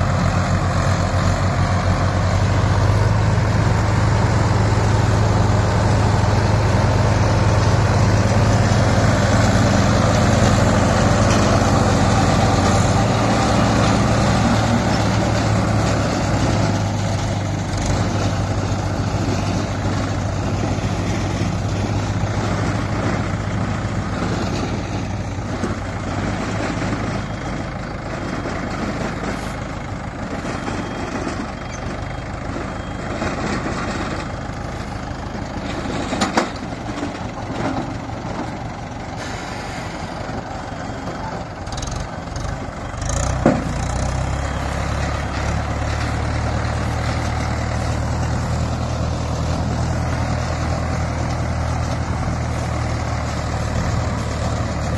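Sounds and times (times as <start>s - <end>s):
tractor diesel engines running: 0.0s - 54.9s
baler machinery clattering: 0.1s - 54.9s.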